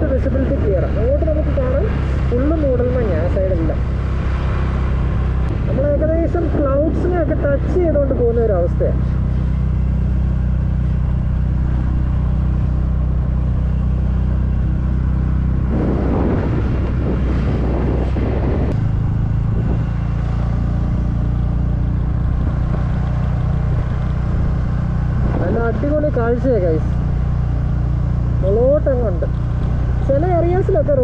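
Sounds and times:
motorcycle engine running: 0:00.0 - 0:31.0
wind rushing over camera: 0:15.3 - 0:20.3.

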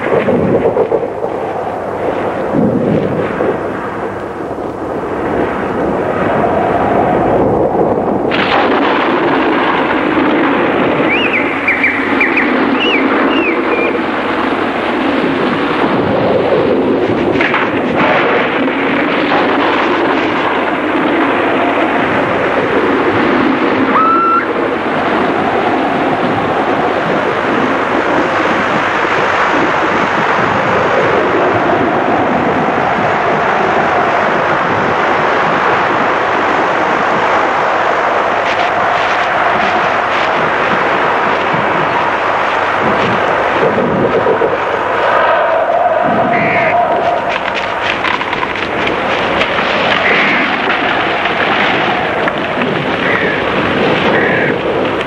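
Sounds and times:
wind through trees: 0:00.0 - 0:55.0
faint high calls: 0:23.9 - 0:24.6, 0:45.0 - 0:47.8.

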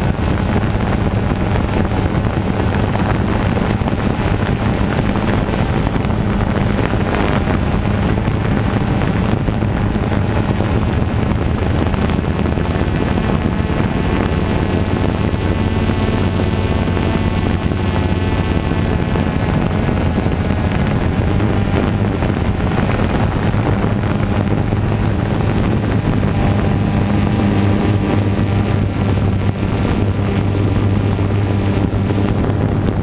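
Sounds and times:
drone motors humming: 0:00.0 - 0:33.0
wind buffeting microphone: 0:00.0 - 0:33.0.

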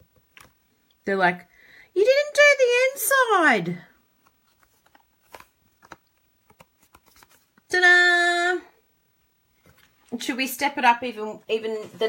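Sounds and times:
card paper taps and rustles: 0:04.2 - 0:07.6.

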